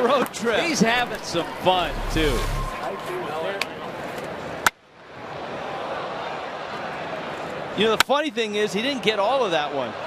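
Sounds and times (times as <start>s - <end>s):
ballpark crowd noise: 0.0s - 10.0s.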